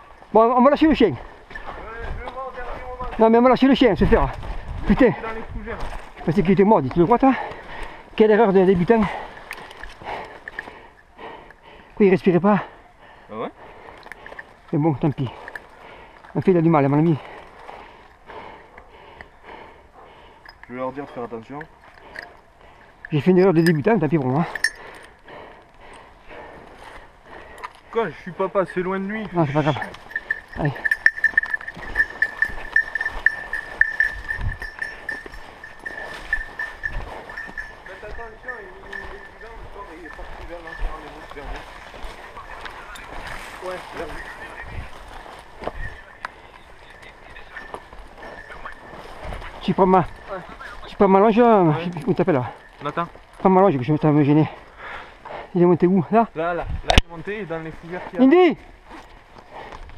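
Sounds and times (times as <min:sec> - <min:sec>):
footsteps through undergrowth: 0:00.0 - 0:12.0, 0:13.0 - 0:59.9
breathing close to microphone: 0:07.3 - 0:08.2, 0:09.0 - 0:12.0, 0:12.6 - 0:16.4, 0:17.1 - 0:23.2, 0:24.4 - 0:28.4, 0:29.0 - 0:50.9, 0:54.5 - 0:55.6, 0:58.9 - 0:59.9.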